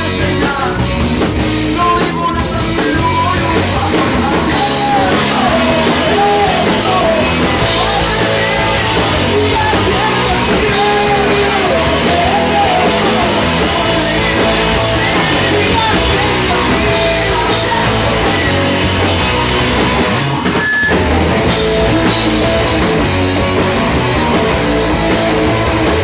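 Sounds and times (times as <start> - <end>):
rock band playing loudly: 0.0 - 26.0.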